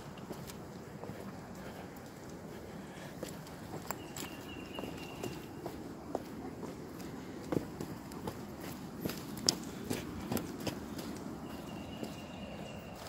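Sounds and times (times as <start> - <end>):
footsteps on gravel and stone: 0.0 - 13.0.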